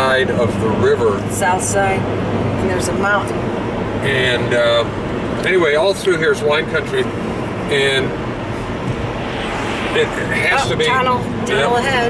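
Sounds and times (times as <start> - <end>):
car engine noise: 0.0 - 12.0.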